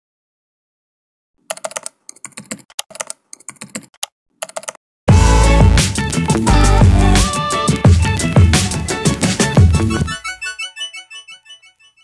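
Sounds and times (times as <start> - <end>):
typing on computer keyboard: 1.5 - 4.8.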